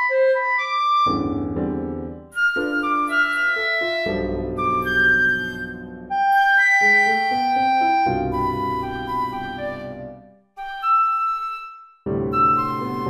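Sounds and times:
flute figures: 0:00.0 - 0:13.0.

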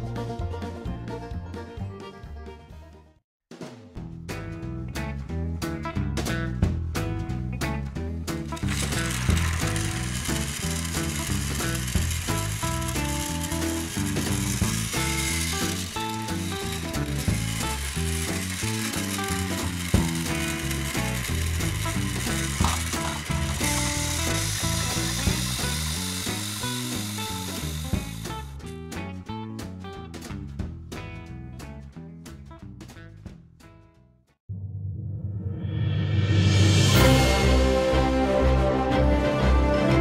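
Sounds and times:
background music: 0:00.0 - 0:03.2, 0:04.0 - 0:33.1, 0:35.4 - 0:40.0
toy trains whirring and rattling: 0:08.4 - 0:28.7.

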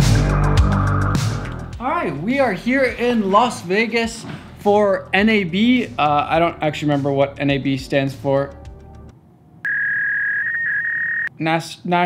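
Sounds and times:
high electronic beep: 0:09.7 - 0:11.3.

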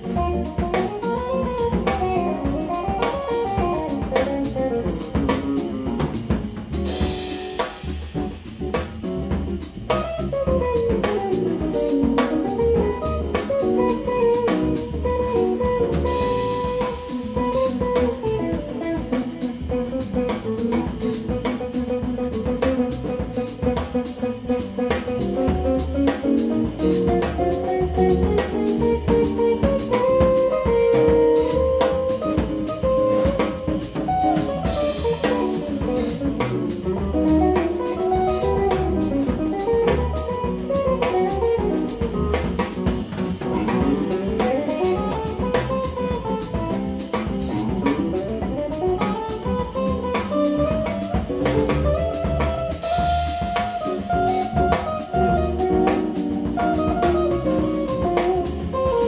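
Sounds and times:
drum kit: 0:00.0 - 0:59.0
jazz electric guitar solo: 0:00.0 - 0:59.0
walking upright bass: 0:00.0 - 0:59.0.

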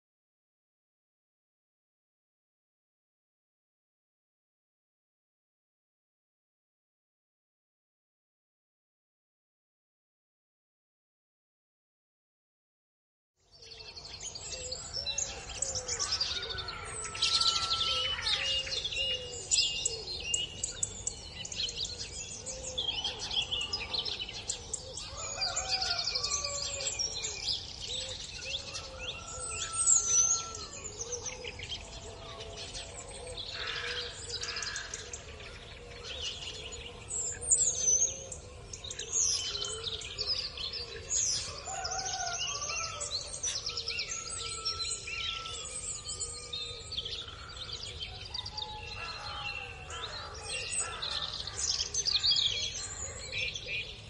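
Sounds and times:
birds singing and chirping: 0:13.4 - 0:54.0.

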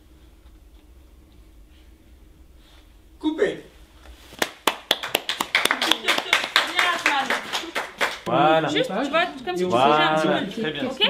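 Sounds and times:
hands clapping: 0:04.3 - 0:08.3.

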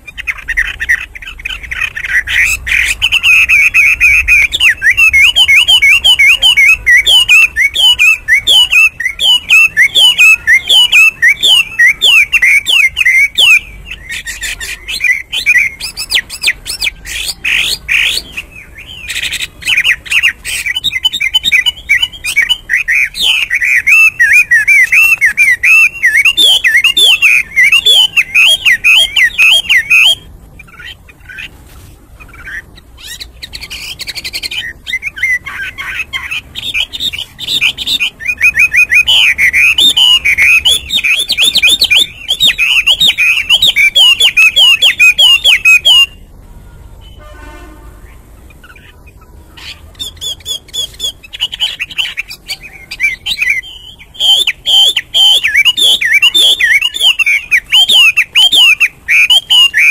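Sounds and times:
songbird singing rapid notes: 0:00.0 - 0:46.3, 0:48.0 - 0:59.9.

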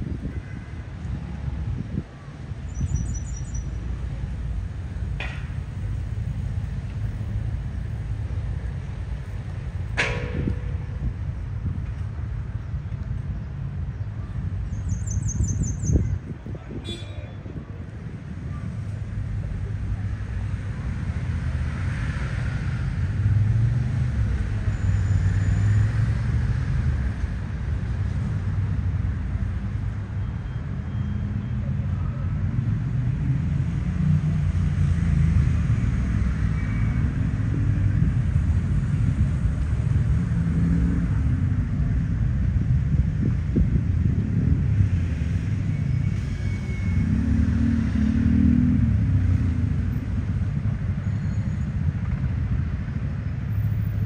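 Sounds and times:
road traffic rumble: 0:00.0 - 0:54.0
vehicles passing: 0:00.0 - 0:54.0.

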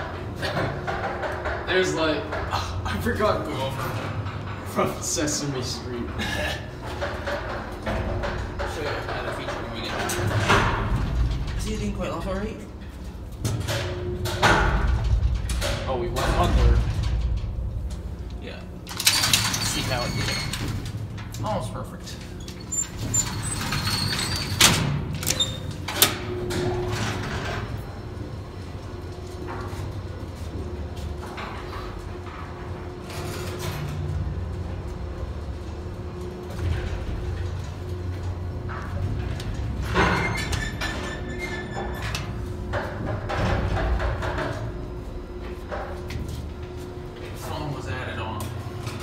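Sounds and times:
elevator door sliding shut: 0:18.9 - 0:21.2, 0:22.5 - 0:28.2, 0:36.2 - 0:44.9
elevator car humming: 0:22.2 - 0:49.0.

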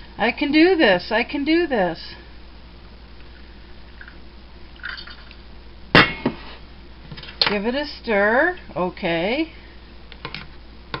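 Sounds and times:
water pouring into mug: 0:04.8 - 0:05.4.

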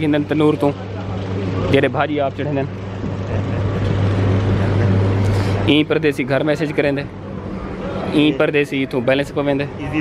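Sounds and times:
steady low hum: 0:00.0 - 0:10.0
street noise: 0:00.0 - 0:10.0.

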